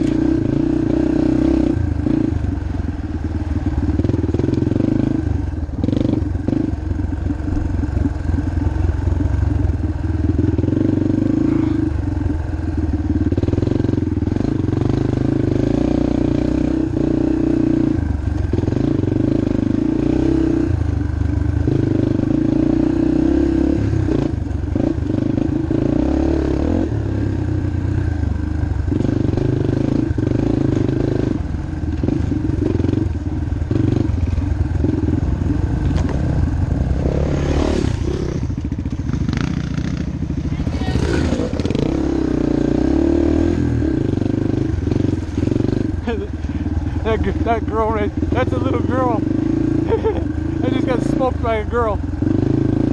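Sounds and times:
motorbike engine revving: 0.0s - 52.9s.

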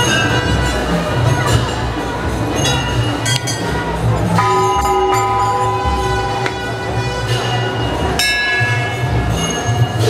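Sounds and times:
metal temple bells ringing: 0.0s - 10.0s.

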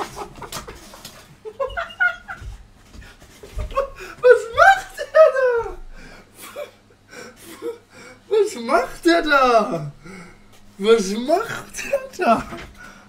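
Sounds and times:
man laughing: 0.0s - 2.6s, 3.4s - 7.9s, 8.6s - 12.9s.

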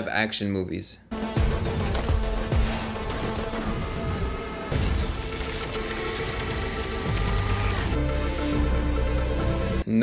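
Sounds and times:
film soundtrack music: 1.0s - 10.0s.

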